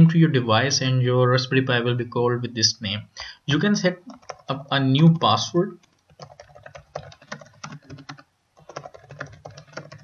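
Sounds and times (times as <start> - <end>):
fast typing on laptop keyboard: 4.0 - 10.0.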